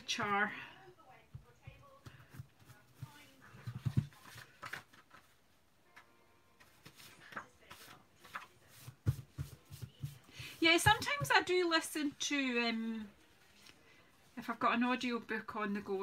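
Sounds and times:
soft rustles of card: 0:01.9 - 0:05.5, 0:06.6 - 0:11.2.

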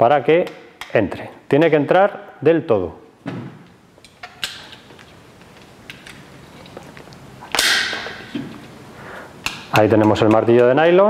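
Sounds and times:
loud sharp hammer hit: 0:07.6 - 0:08.3.

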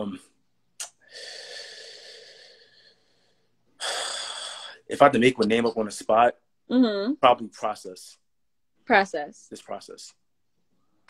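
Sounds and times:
man speaking: 0:00.0 - 0:00.3, 0:04.8 - 0:06.4, 0:07.2 - 0:08.2, 0:09.5 - 0:10.2
man breathing out: 0:01.0 - 0:04.8.

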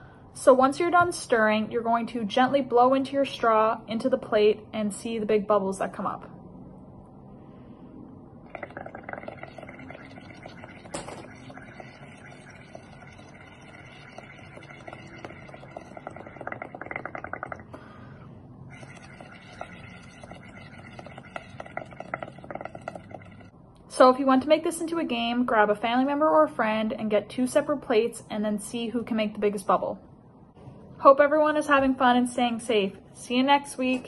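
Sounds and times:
bubbling through a straw: 0:08.4 - 0:18.0, 0:18.6 - 0:23.6.

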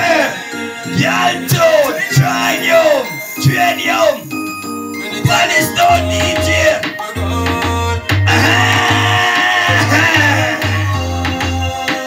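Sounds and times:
sustained tones: 0:00.9 - 0:10.2
repeating bass line: 0:00.9 - 0:11.8.

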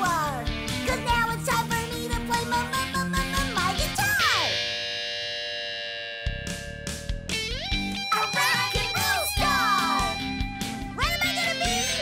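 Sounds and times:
drums: 0:00.0 - 0:12.0
rock band music: 0:00.0 - 0:12.0
sliding electric guitar: 0:02.0 - 0:12.0.

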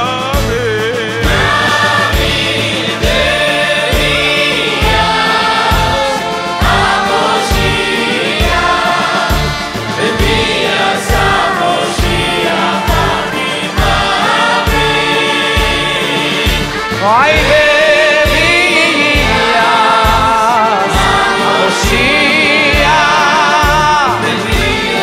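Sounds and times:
man singing lead: 0:00.0 - 0:05.0, 0:16.1 - 0:25.0
choir singing in harmony: 0:00.0 - 0:25.0
live band playing: 0:00.0 - 0:25.0.

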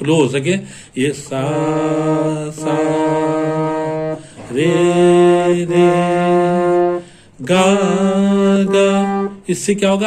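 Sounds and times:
man singing: 0:00.0 - 0:10.0.

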